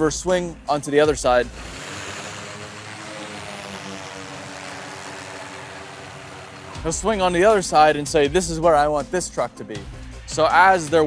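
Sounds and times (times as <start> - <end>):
distant heavy machinery droning: 1.2 - 7.8.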